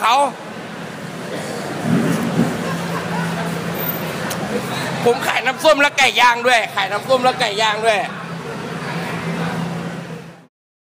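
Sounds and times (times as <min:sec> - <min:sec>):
low mechanical hum: 0:00.1 - 0:10.5.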